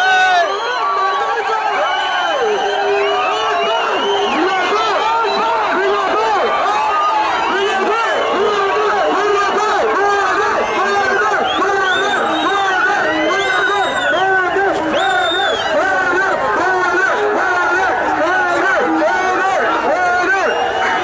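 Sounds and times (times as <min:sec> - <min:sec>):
crowd shouting and cheering: 0:00.0 - 0:21.0.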